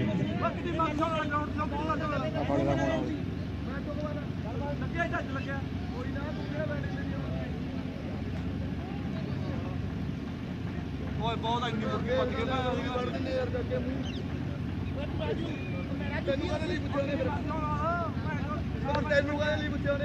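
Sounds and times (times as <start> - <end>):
faint voices talking: 0.0 - 20.0
steady low hum: 0.0 - 20.0.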